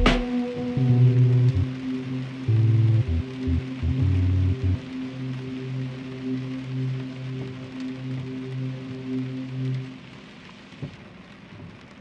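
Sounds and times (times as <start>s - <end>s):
held low musical note: 0.0s - 5.4s
steady rain hiss: 0.0s - 12.0s.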